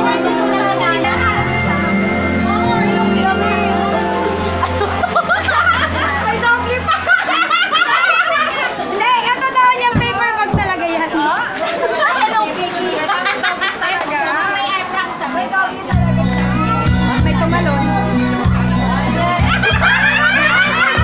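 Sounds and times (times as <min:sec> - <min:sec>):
background music: 0:00.0 - 0:07.8, 0:16.0 - 0:21.0
people chattering: 0:00.0 - 0:21.0.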